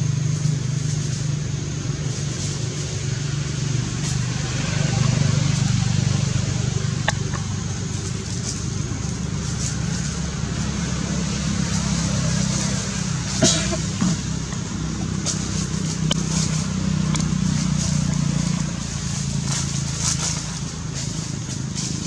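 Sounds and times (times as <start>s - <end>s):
low motor hum: 0.0s - 22.0s.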